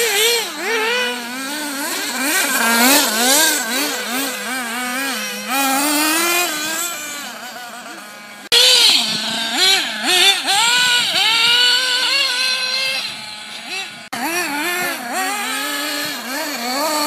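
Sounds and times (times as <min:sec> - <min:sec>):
small nitro engine revving: 0:00.0 - 0:17.0.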